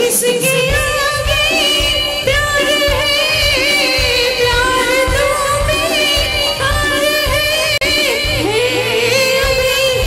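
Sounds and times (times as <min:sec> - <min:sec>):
live band accompaniment: 0:00.0 - 0:10.0
woman singing into microphone: 0:00.0 - 0:10.0.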